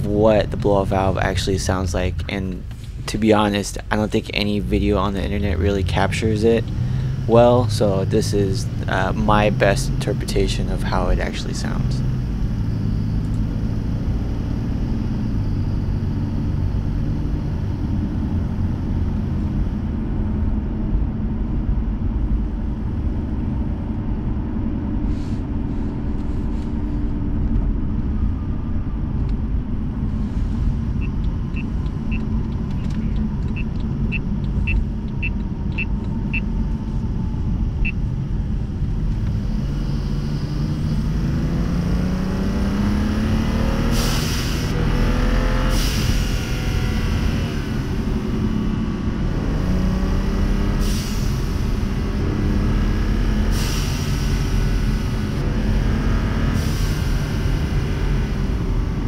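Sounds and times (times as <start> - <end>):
car engine cruising: 0.0 - 59.0
road rumble: 0.0 - 59.0.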